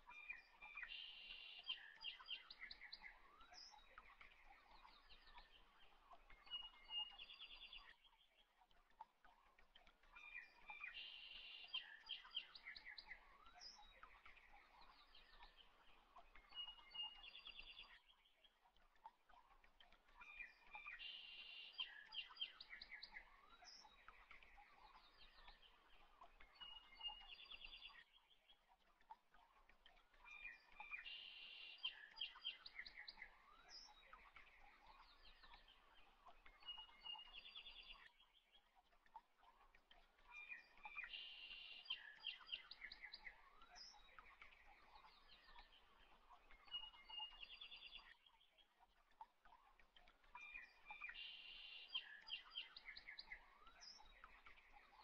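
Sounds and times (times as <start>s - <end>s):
faint bird chirps and trills: 0.0s - 55.0s.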